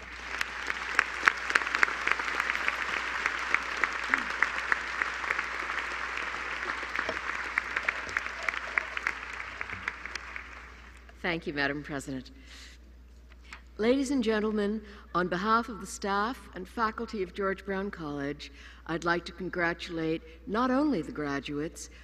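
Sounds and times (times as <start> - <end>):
audience applauding: 0.0 - 11.0.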